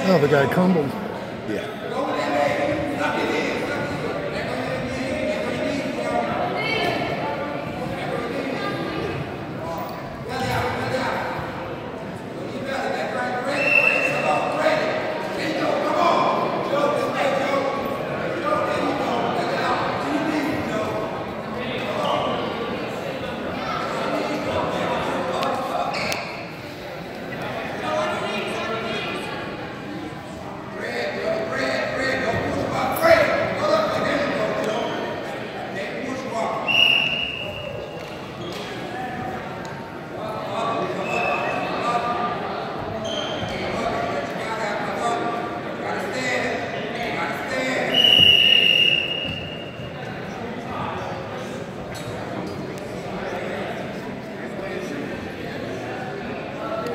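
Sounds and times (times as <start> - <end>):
echoing chatter of voices: 0.0 - 56.9
referee whistle blasts: 13.6 - 14.3, 36.7 - 37.9, 47.9 - 49.8.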